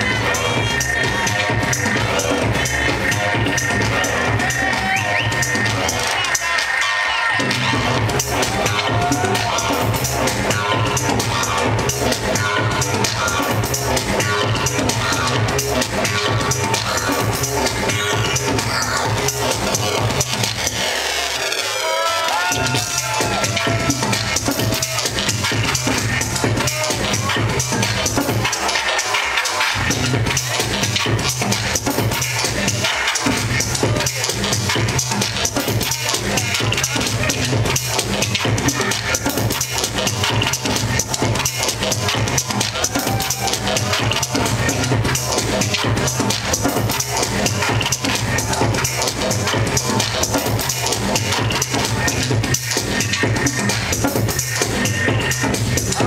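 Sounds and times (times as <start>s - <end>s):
sustained bassline: 0.0s - 6.4s, 7.2s - 28.7s, 29.8s - 56.0s
electronic dance music: 0.0s - 56.0s.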